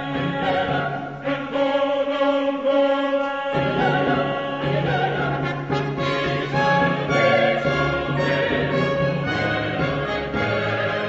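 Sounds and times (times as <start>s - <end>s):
choir singing sustained chords: 0.0s - 11.0s
strings playing: 3.6s - 11.0s.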